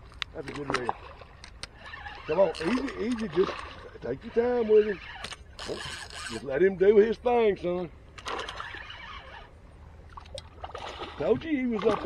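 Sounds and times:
fishing reel whirring with clicks: 1.6s - 6.4s, 8.2s - 9.5s.

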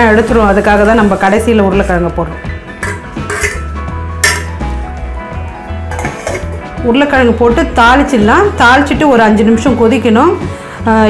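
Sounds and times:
background music: 0.0s - 11.0s
steel ladle clinking on vessel: 2.8s - 4.6s, 5.9s - 6.6s.

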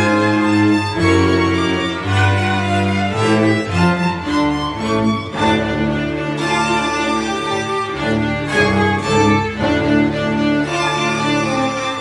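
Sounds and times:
bowed cello sustained notes: 0.0s - 12.0s.

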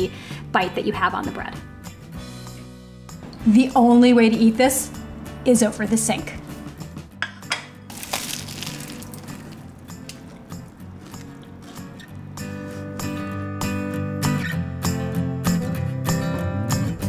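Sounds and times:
background music with guitar strums: 0.1s - 4.1s, 4.8s - 17.0s.

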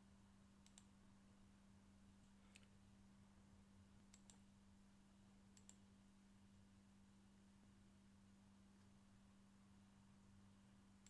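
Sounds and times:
low steady hum: 0.0s - 11.0s
computer mouse clicks: 0.6s - 0.9s, 2.2s - 2.8s, 4.1s - 4.5s, 5.6s - 5.8s.

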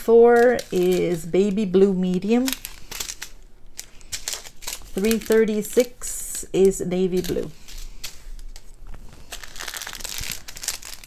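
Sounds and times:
plastic packets crinkling: 0.0s - 11.0s.

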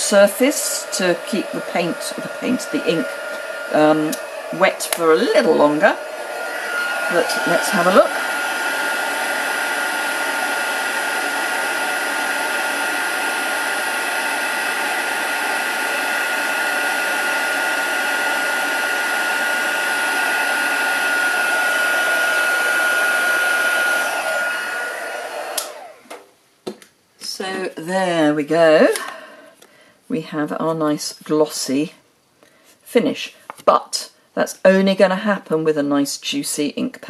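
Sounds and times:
heat gun running: 0.2s - 26.2s.

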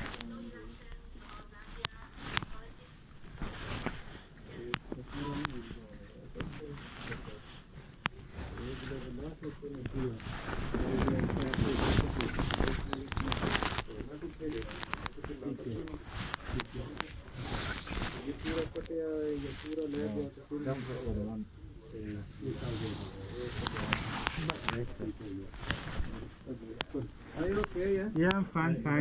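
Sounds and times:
microphone rubbing on fabric: 0.0s - 28.2s
muffled voices: 0.0s - 29.0s.

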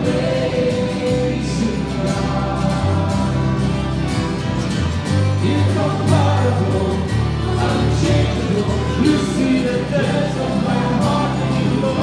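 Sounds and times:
choir and congregation singing a hymn: 0.0s - 4.6s, 5.2s - 12.0s
instrumental accompaniment with bass: 0.0s - 12.0s.

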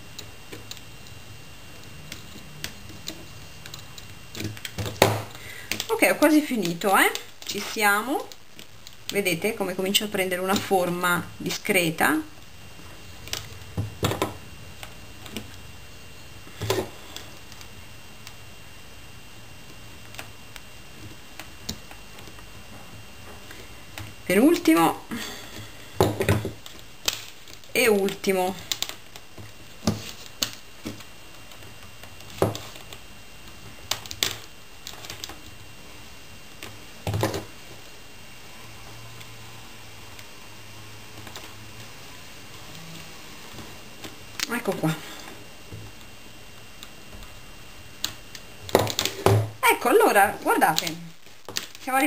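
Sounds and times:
wire and beads clicking: 0.1s - 9.3s, 26.6s - 35.6s.

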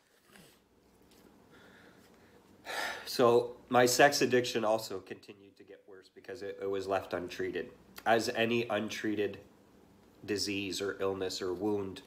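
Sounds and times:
man breathing: 1.4s - 3.1s
sharp intake of breath: 2.6s - 3.1s
man speaking: 3.1s - 9.5s, 10.2s - 12.0s.

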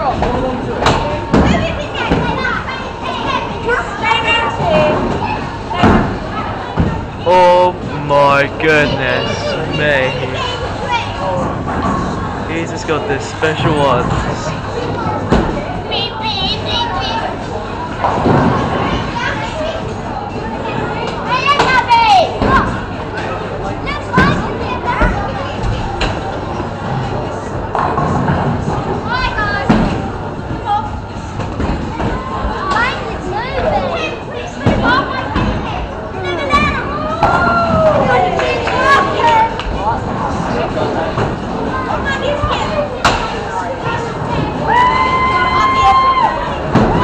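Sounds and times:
bowling alley hubbub: 0.0s - 47.0s
chatter of people: 0.0s - 47.0s.

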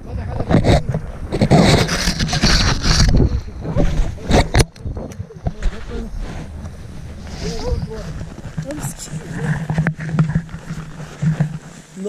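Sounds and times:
fabric rubbing on microphone: 0.0s - 12.0s.

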